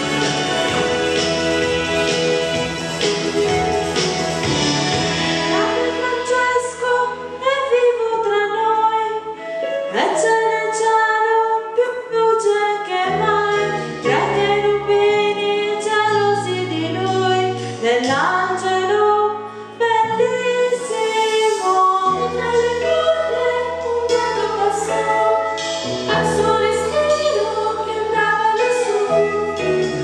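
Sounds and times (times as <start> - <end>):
instrumental accompaniment with bass: 0.0 - 10.9, 13.0 - 30.0.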